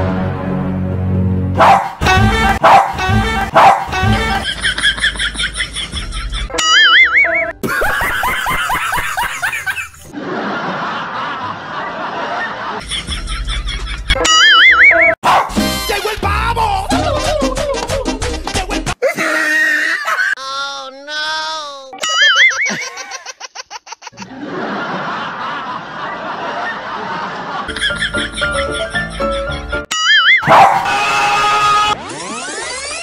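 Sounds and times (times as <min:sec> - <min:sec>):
warbling comedic laugh: 0:02.0 - 0:15.2, 0:16.9 - 0:20.5, 0:21.9 - 0:33.0
canned crowd laughter: 0:03.3 - 0:15.2, 0:22.0 - 0:29.9.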